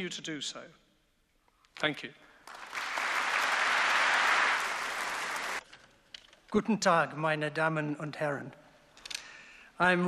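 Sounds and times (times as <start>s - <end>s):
audience applause: 2.4s - 5.6s.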